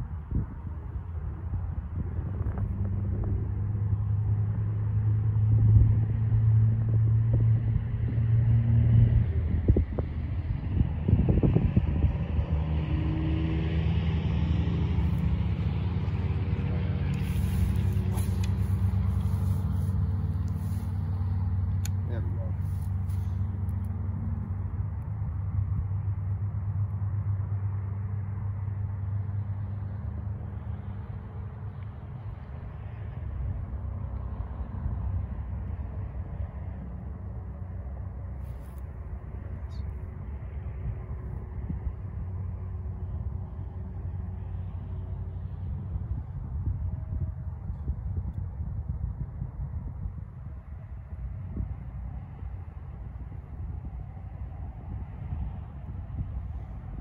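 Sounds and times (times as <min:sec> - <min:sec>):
low engine drone: 0:00.0 - 0:57.0.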